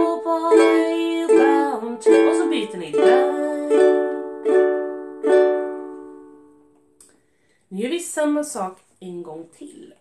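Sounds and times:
ukulele strums: 0.0s - 7.1s.

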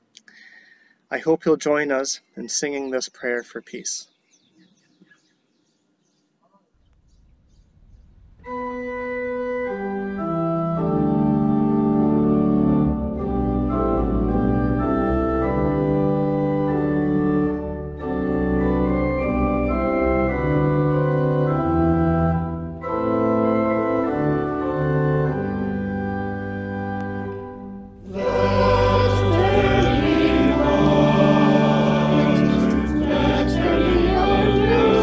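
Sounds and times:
church organ chords: 7.8s - 35.0s.

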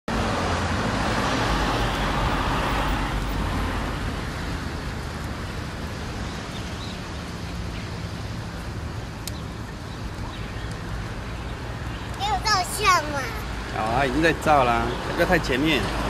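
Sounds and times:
background traffic: 0.1s - 16.0s.

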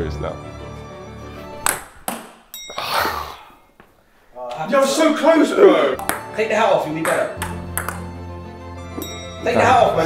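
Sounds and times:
background music: 0.0s - 3.8s, 4.7s - 10.0s
table tennis ball knocks: 1.6s - 2.5s, 6.0s - 6.4s, 7.0s - 8.1s.

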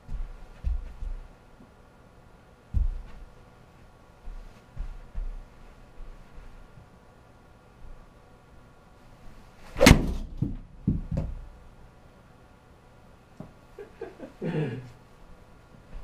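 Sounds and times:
dull thumps: 2.7s - 3.3s, 9.8s - 11.5s.

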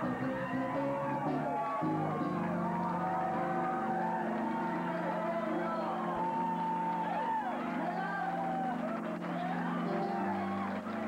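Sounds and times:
slow blues band music: 0.0s - 4.4s
electric keyboard chords: 0.0s - 11.0s.

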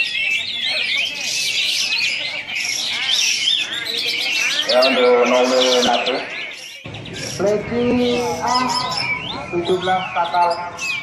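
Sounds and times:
songbirds chirping and chattering: 0.0s - 11.0s.

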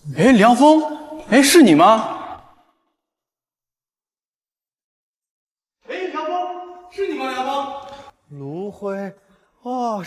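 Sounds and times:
man speaking: 0.0s - 2.4s, 5.8s - 10.0s.

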